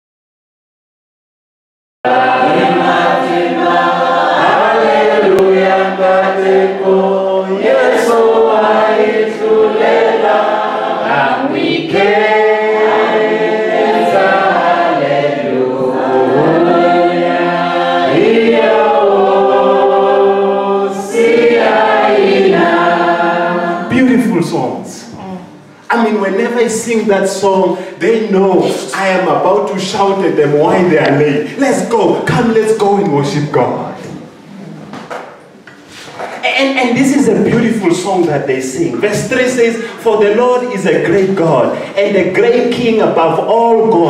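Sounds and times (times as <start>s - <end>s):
unaccompanied worship singing: 2.1s - 34.8s, 35.4s - 44.0s.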